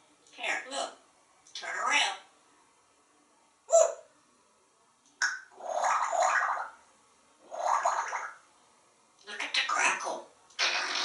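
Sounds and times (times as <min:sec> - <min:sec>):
parrot mimicking gurgling water: 0:05.6 - 0:06.7, 0:07.5 - 0:08.4.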